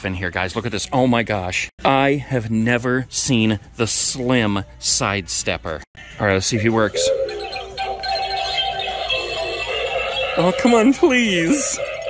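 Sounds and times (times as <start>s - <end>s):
toy clown playing music: 6.0s - 12.0s.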